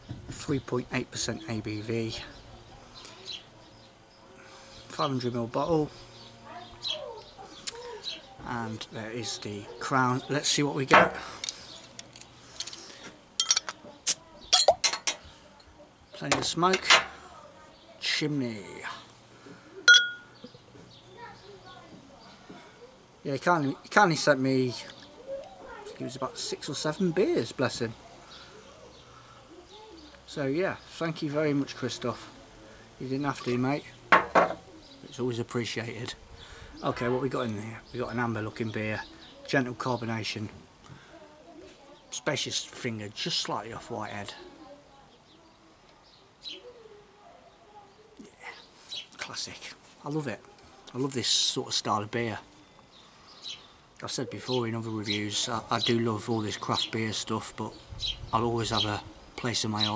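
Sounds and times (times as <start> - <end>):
small birds chirping: 0.0 - 59.9
faint handling sounds: 10.8 - 14.0
glass bottle clinking on glass: 14.5 - 15.2, 19.9 - 20.3, 34.1 - 34.6.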